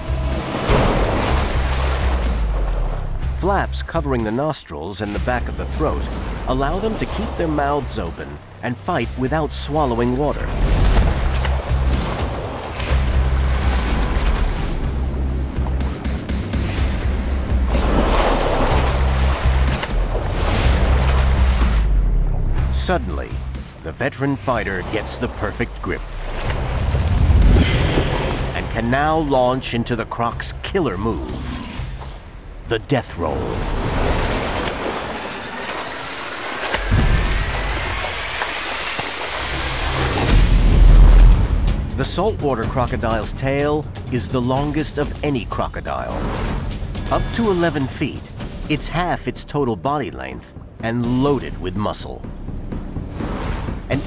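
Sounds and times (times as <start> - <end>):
deep boom: 0.0 - 3.2, 26.6 - 29.2, 36.8 - 38.1, 40.0 - 42.0
dramatic score with low bass: 0.0 - 54.0
water splashing and churning: 0.0 - 54.0
rising whine-like whoosh: 36.7 - 41.4.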